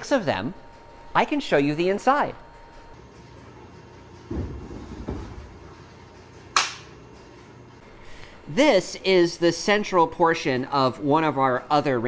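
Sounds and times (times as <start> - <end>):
hand slap high five: 6.6 - 6.9.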